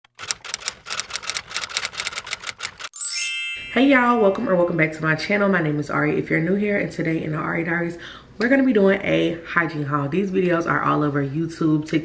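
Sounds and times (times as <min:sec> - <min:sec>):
typewriter key clacks: 0:00.1 - 0:02.9.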